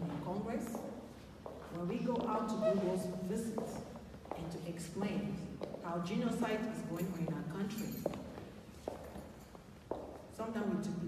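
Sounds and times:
footsteps on a hard floor: 0.1s - 4.5s, 7.8s - 10.3s.

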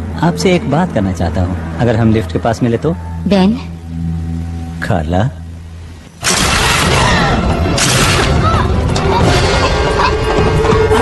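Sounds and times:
dense noisy sound effects: 0.0s - 11.0s
soundtrack music: 0.0s - 11.0s.

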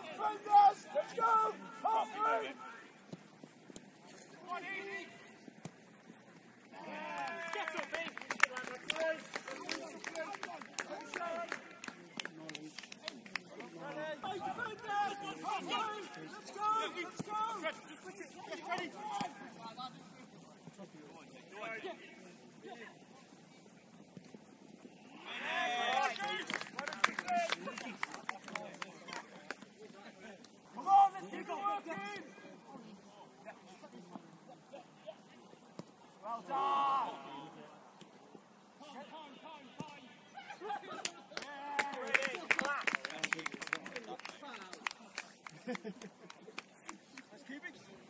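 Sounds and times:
players shouting: 0.0s - 2.9s, 13.8s - 19.6s, 36.2s - 37.6s.

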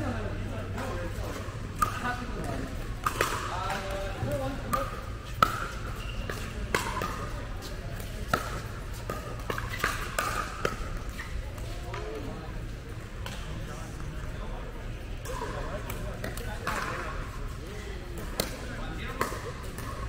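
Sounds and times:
ball bouncing on court: 1.3s - 12.2s, 18.2s - 20.0s
paddles hitting plastic ball: 1.8s - 12.1s, 18.2s - 20.0s.

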